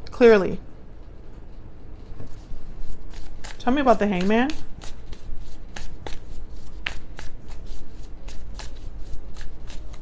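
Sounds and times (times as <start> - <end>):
cards being shuffled: 2.2 - 10.0.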